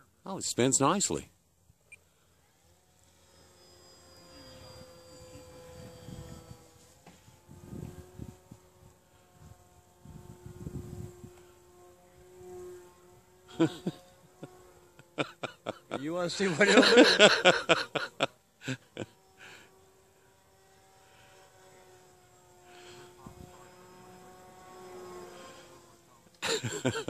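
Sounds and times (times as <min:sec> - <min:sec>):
model airplane motor buzzing: 0:00.9 - 0:27.0.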